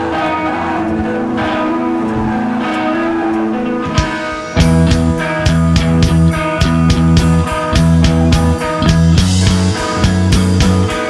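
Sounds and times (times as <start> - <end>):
electric guitars ringing chords: 0.0 - 11.0.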